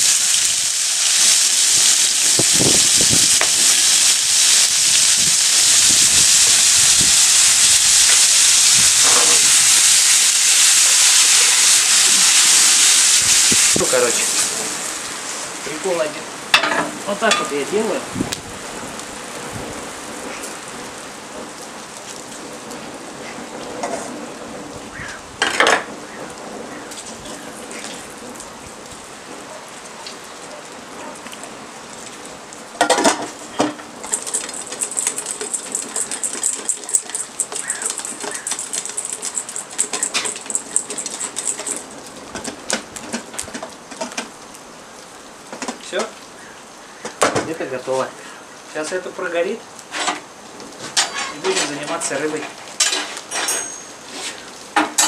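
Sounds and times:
food sizzling in hot oil: 0:00.0 - 0:22.4, 0:32.7 - 0:44.4, 0:45.2 - 0:55.0
pot and utensils clanking: 0:16.6 - 0:17.6, 0:50.8 - 0:55.0.

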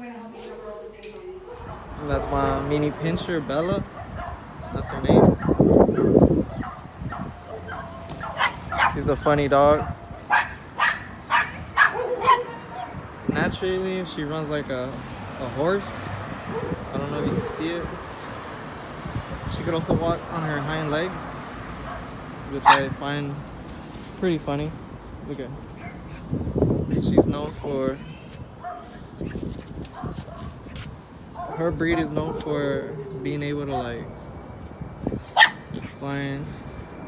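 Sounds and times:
dog barking: 0:01.4 - 0:01.9, 0:04.0 - 0:09.0, 0:09.8 - 0:13.0, 0:16.5 - 0:17.6, 0:21.9 - 0:22.9, 0:31.4 - 0:32.6, 0:35.4 - 0:35.6.

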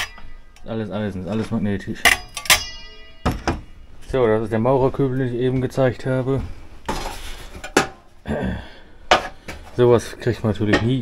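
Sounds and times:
magnet striking metal plates: 0:00.0 - 0:00.7, 0:02.0 - 0:03.9
metal plate ringing: 0:00.0 - 0:01.2, 0:02.0 - 0:04.0.

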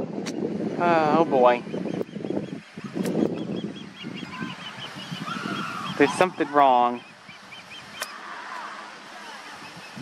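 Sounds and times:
osprey whistled chirps: 0:01.7 - 0:08.2.

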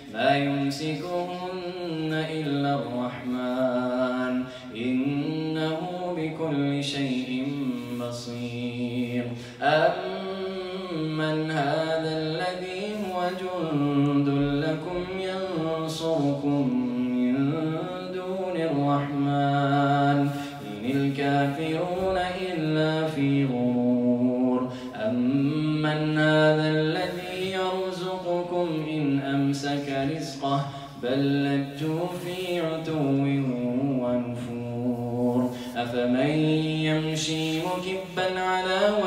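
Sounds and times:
man chanting melodically: 0:00.0 - 0:39.0.

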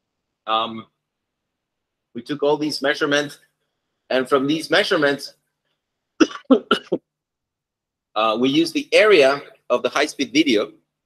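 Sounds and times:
person coughing: 0:06.2 - 0:07.0.

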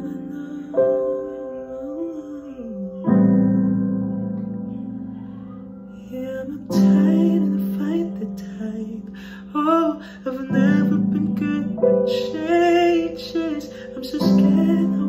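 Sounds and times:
young man singing ballad: 0:00.0 - 0:04.6, 0:05.9 - 0:15.0.

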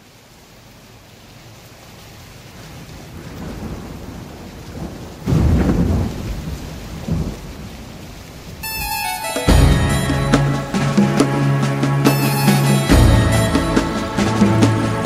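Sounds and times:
rain: 0:00.0 - 0:15.0
thunder rolling: 0:03.1 - 0:08.9.

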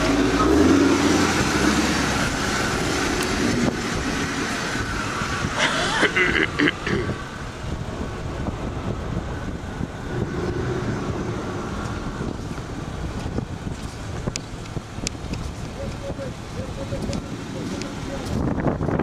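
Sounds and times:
wind on microphone: 0:00.0 - 0:05.8, 0:06.5 - 0:19.0
car rolling along road: 0:00.0 - 0:19.0.

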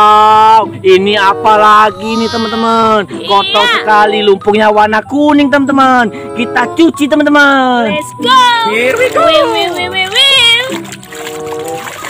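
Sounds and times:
background music with held notes: 0:00.0 - 0:12.0
person making wordless exclamations: 0:01.7 - 0:04.4
water sloshing in plastic basin: 0:08.6 - 0:12.0.

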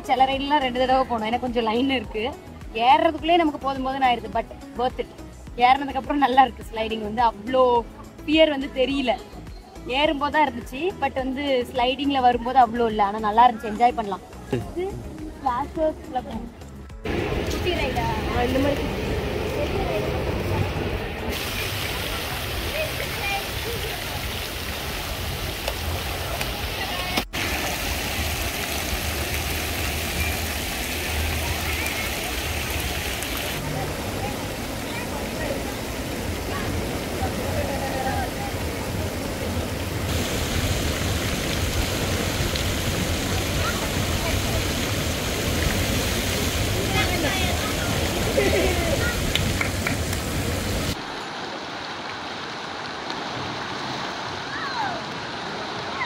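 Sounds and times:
water rushing into splash pool: 0:17.0 - 0:56.0
people and children voices: 0:17.5 - 0:24.4, 0:30.2 - 0:32.7, 0:33.4 - 0:39.6, 0:43.4 - 0:44.9, 0:46.4 - 0:49.8, 0:54.4 - 0:55.2.

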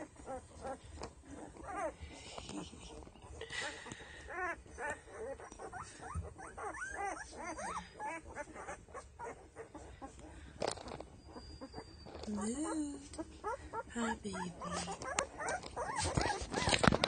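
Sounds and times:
puppies squeaking and whimpering: 0:00.0 - 0:17.0.

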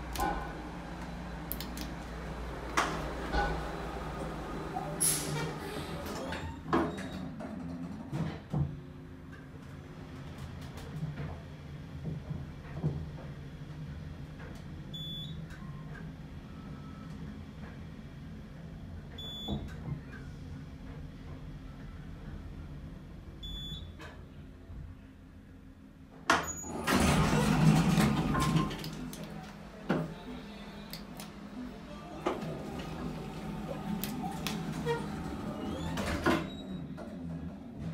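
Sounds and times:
elevator motor hum: 0:00.0 - 0:06.5, 0:26.6 - 0:37.9.

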